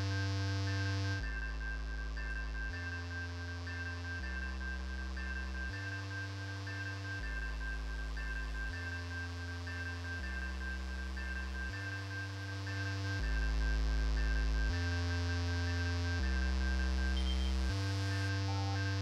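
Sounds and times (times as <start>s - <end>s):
synthesizer bass note: 16.2s - 19.0s.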